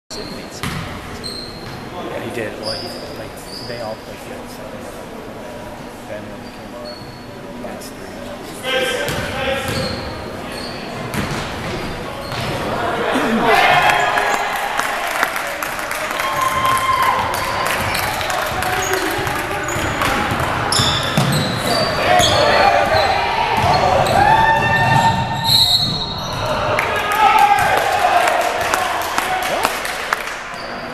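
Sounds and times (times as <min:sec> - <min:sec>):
sneaker squeaks: 0:00.1 - 0:03.9, 0:06.3 - 0:07.6, 0:08.8 - 0:12.7, 0:17.4 - 0:26.6, 0:30.5 - 0:30.9
basketball bouncing on hardwood floor: 0:00.6 - 0:00.8, 0:11.1 - 0:12.5, 0:23.6 - 0:23.8
shouting voices: 0:12.7 - 0:15.2.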